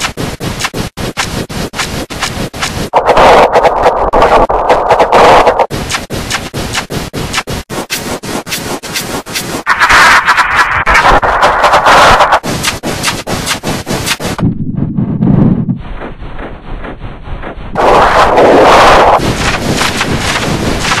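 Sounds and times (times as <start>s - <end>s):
distorted noisy blare with stuttering clicks: 0.0s - 21.0s.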